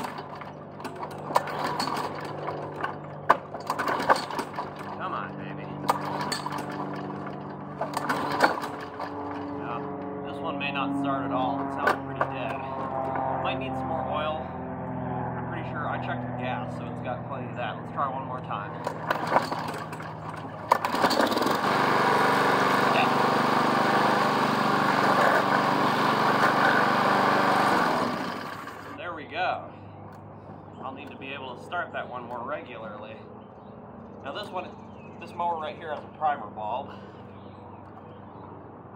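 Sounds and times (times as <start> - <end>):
push-mower engine idling: 0.0 - 9.8, 18.4 - 29.0
sharp clicks and knocks: 5.8 - 9.6
starter cord pull: 18.8 - 21.7.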